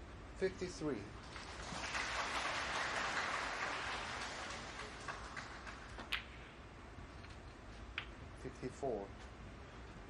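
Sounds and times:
audience applauding: 1.3 - 6.0.

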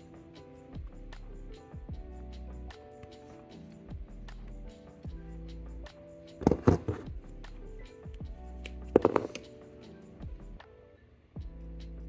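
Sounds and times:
background music: 0.0 - 12.0
pliers and pen clicking on tabletop: 8.6 - 9.5.

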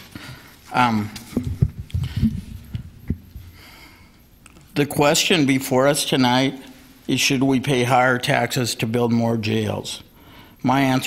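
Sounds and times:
microphone handling knocks: 1.3 - 3.5.

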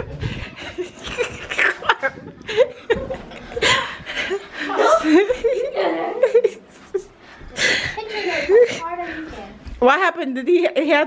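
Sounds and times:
children laughing: 0.0 - 9.3
children's voices: 7.4 - 9.7.

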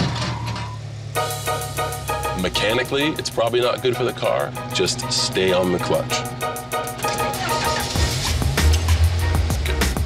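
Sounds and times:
vehicle engine humming: 0.0 - 10.0
fast-beat background music: 1.2 - 10.0.

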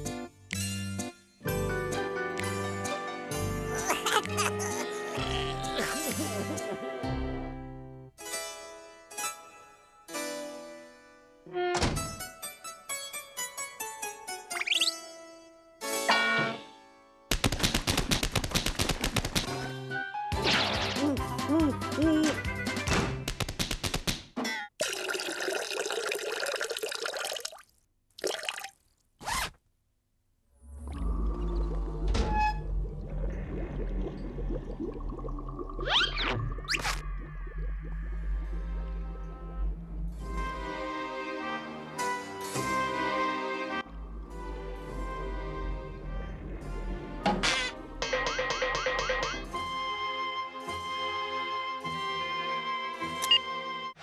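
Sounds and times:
low dark music over drone: 37.0 - 41.5, 43.6 - 48.1.

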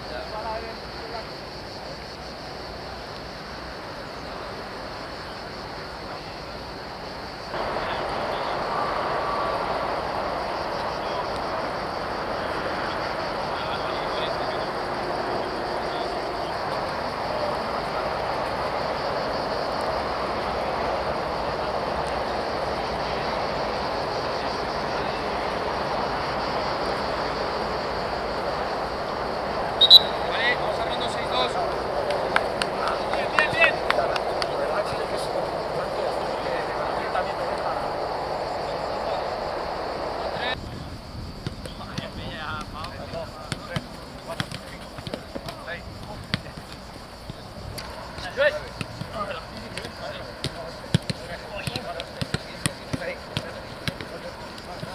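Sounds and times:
hubbub of voices: 0.0 - 40.9.

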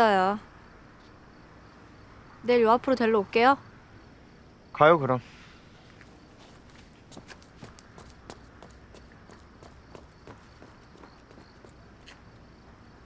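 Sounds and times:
faint night insects: 0.0 - 13.0
footsteps walking: 5.9 - 12.3.

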